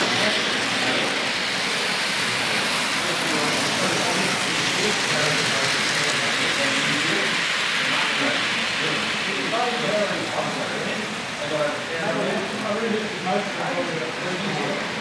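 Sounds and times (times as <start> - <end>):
model train running on track: 0.0 - 15.0
people chatting: 0.0 - 15.0.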